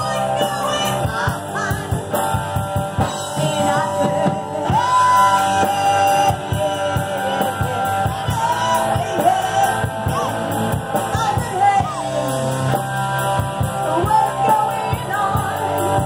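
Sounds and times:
person singing: 0.0 - 12.8, 13.6 - 16.0
bass guitar: 0.0 - 16.0
drum kit: 0.0 - 16.0
electric guitar: 0.0 - 16.0.

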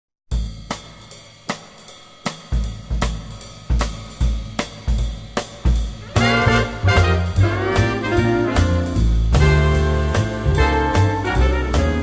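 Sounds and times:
drum kit swing beat: 0.3 - 12.0.

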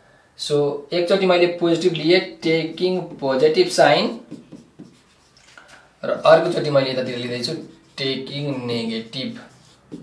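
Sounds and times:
person speaking: 0.4 - 10.0
marker scratching on whiteboard: 1.8 - 10.0.

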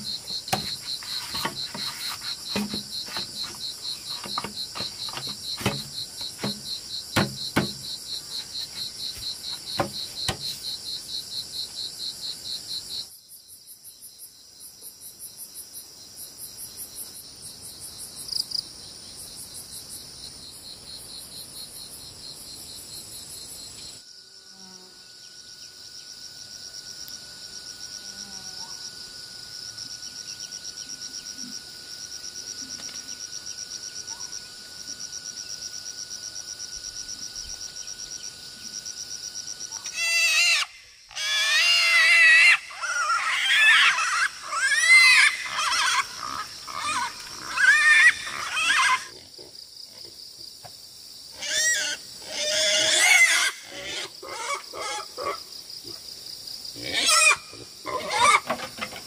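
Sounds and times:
sharp knocks of bamboo rails: 0.0 - 7.9, 9.7 - 10.6
insects chirping in fast pulses: 0.0 - 59.0
steady high insect tone: 0.0 - 59.0.

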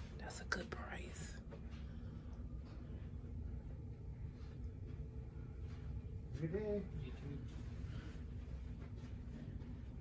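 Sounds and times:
low room hum: 0.0 - 10.0
person whispering: 0.2 - 1.4.

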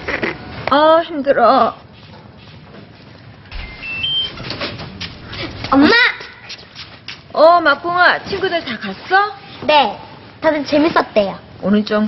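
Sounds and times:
electronic lock rising beeps: 3.5 - 4.5.

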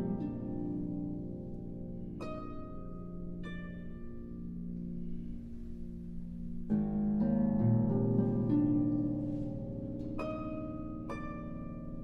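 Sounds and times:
harp plucked notes: 0.0 - 12.0.

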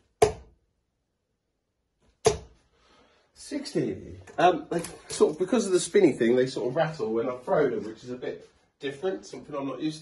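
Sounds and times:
dart hitting a dartboard: 0.2 - 0.5, 2.2 - 2.6.

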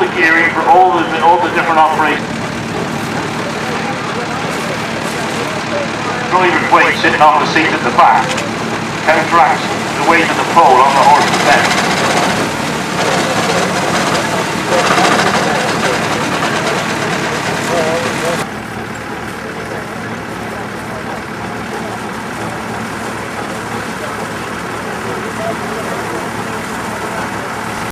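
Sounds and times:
indistinct voices: 0.0 - 27.9
reaper-binder clattering: 4.5 - 18.4.

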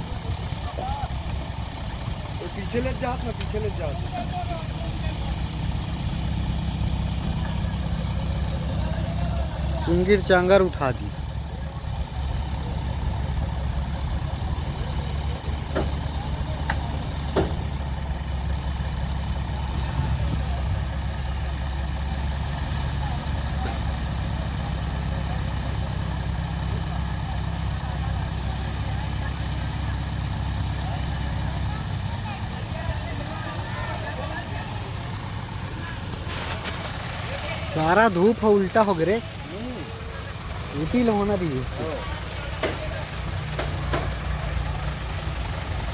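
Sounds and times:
heavy diesel engine droning: 0.0 - 45.9.

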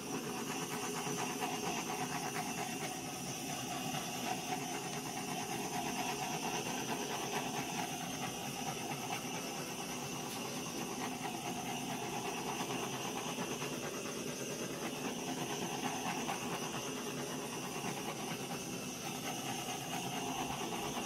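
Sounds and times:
gas torch hissing: 0.0 - 21.0.

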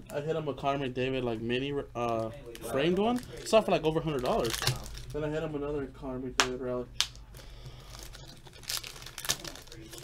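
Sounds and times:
plastic wrapper crackling: 2.0 - 5.2, 7.0 - 10.0
plastic wrapper crinkling: 2.1 - 5.2, 7.0 - 10.0.

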